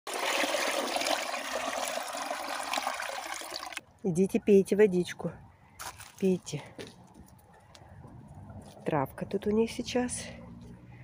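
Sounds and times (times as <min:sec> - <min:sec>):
water pouring into metal bowl: 0:00.1 - 0:03.8.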